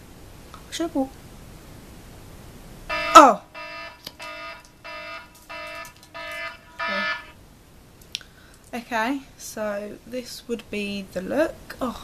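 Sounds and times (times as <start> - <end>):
electronic timer beeps: 2.9 - 7.3.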